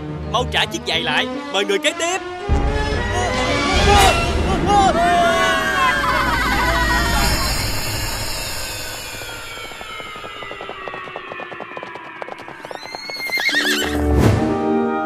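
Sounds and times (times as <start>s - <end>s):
long falling tone: 2.9s - 13.2s
cartoon hoof clicks: 11.8s - 14.0s
horse whinny: 12.7s - 14.1s.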